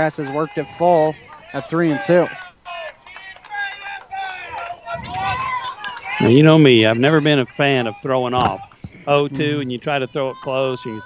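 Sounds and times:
people calling out: 0:00.0 - 0:11.0.

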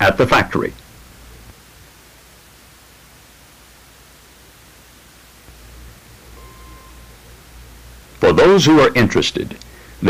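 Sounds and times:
tape hiss: 0:00.0 - 0:10.0
faint steady tone: 0:00.8 - 0:10.0
low hum: 0:05.3 - 0:08.6.

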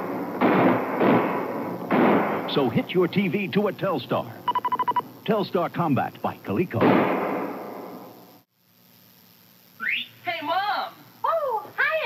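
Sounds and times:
electronic shot and explosion effects: 0:00.0 - 0:02.8, 0:06.6 - 0:08.2.

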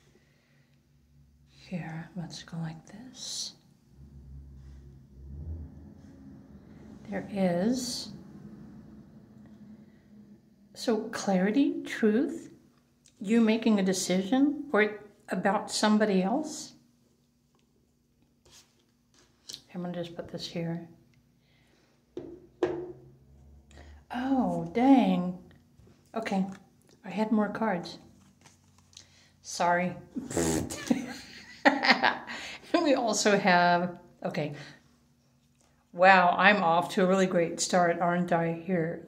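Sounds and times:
low rumble: 0:03.6 - 0:11.9, 0:22.6 - 0:25.5.

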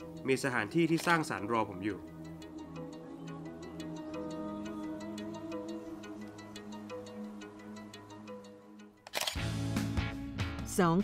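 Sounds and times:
spoken narration: 0:00.2 - 0:02.1
background music with bass line: 0:09.4 - 0:11.0.

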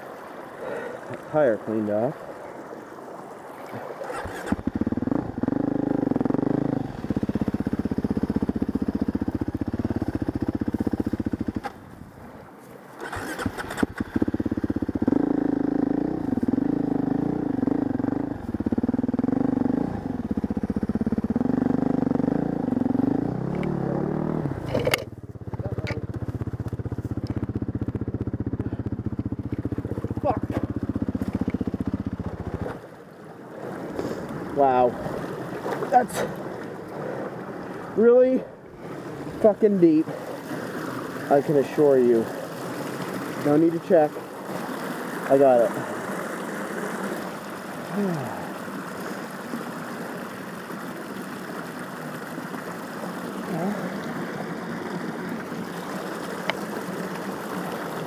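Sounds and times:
dirt bike engine revving: 0:04.1 - 0:11.8, 0:13.0 - 0:32.8.

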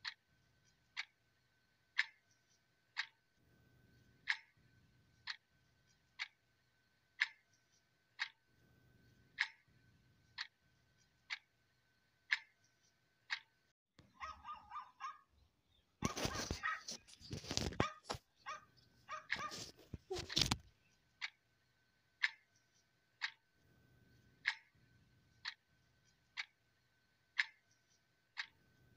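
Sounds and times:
clock ticking: 0:00.0 - 0:03.4, 0:04.1 - 0:08.5, 0:09.2 - 0:10.6, 0:11.2 - 0:13.7, 0:21.2 - 0:21.5, 0:22.1 - 0:23.6, 0:24.3 - 0:28.6
small dog yapping: 0:14.2 - 0:15.2, 0:16.0 - 0:16.9, 0:17.8 - 0:20.3.

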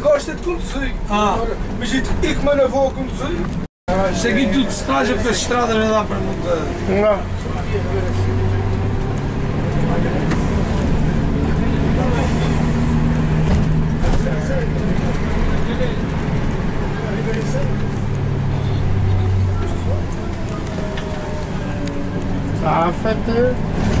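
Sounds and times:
minibus engine running: 0:00.0 - 0:24.0
road noise: 0:00.0 - 0:24.0.

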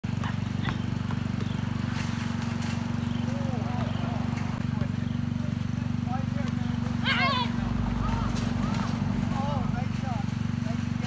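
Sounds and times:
basketball bouncing on asphalt: 0:00.0 - 0:07.1
loud low droning hum: 0:00.0 - 0:11.0.

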